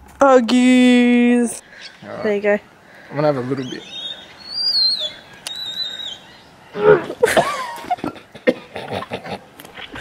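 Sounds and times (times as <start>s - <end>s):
animal whistling call: 3.6s - 7.0s.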